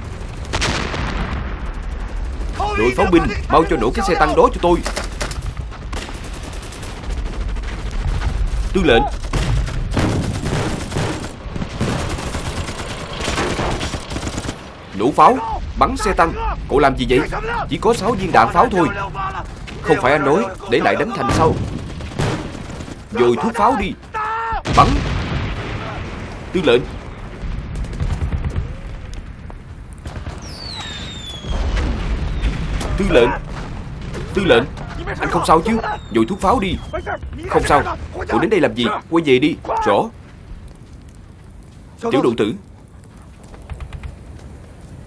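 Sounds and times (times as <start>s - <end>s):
rifle and machine-gun fire: 0.0s - 14.9s, 18.0s - 23.8s, 27.2s - 28.9s
low explosion rumble: 0.0s - 23.2s, 24.0s - 39.2s, 40.0s - 42.0s
man shouting: 2.6s - 4.4s, 15.2s - 17.7s, 18.3s - 21.5s, 23.1s - 24.7s, 35.1s - 36.0s, 39.6s - 40.1s
falling whistle: 30.5s - 31.6s, 35.8s - 37.3s.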